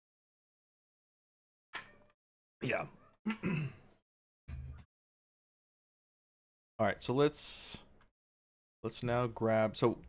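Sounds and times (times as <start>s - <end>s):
man clearing throat: 3.3s - 3.9s.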